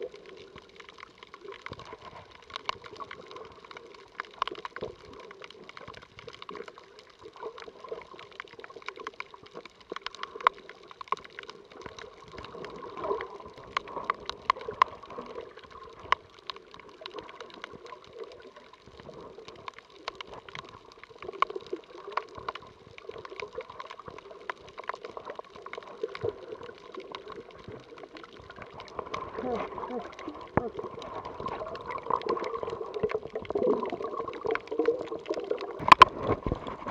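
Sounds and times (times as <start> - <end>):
muffled underwater water movement: 0.0 - 36.9
sharp clicks and crackles: 0.0 - 36.9.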